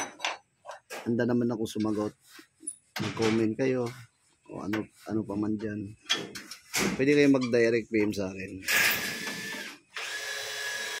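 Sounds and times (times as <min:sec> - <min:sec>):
power tool high whine: 0:08.9 - 0:11.0.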